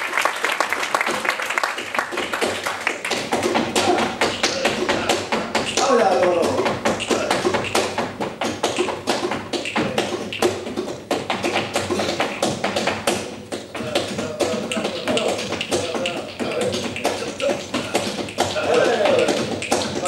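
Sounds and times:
sharp hand claps: 0.0s - 20.0s
flamenco footwork on stage boards: 0.9s - 20.0s.

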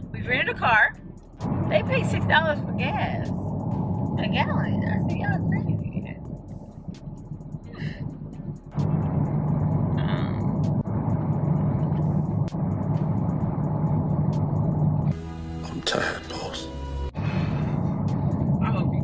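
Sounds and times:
car cabin road noise: 0.0s - 15.2s
background music: 0.0s - 19.0s
film clip with music and voice: 15.1s - 19.0s.

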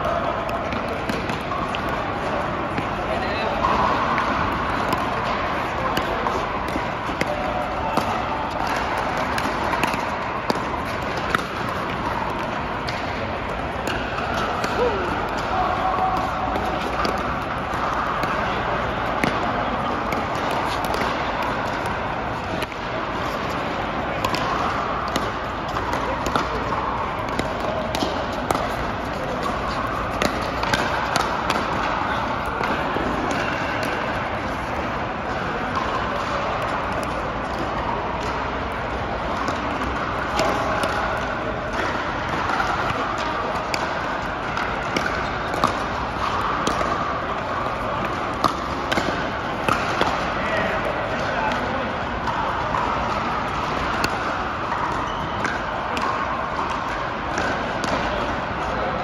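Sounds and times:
hubbub of many voices: 0.0s - 59.0s
paddles hitting plastic ball: 0.3s - 58.7s.

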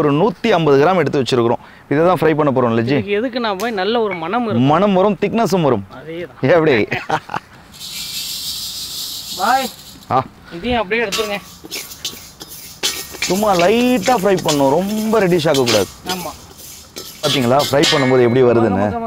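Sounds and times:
men talking and laughing: 6.3s - 7.8s, 9.5s - 19.0s
lentils hissing in a hot wok: 7.7s - 10.2s, 11.0s - 18.3s.

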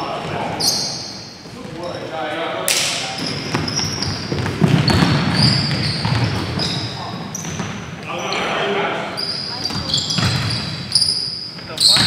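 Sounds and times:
sneakers squeaking on court: 0.0s - 2.1s, 3.1s - 12.0s
players' voices echoing: 0.0s - 12.0s
basketball bouncing: 3.3s - 7.8s, 9.6s - 10.8s.

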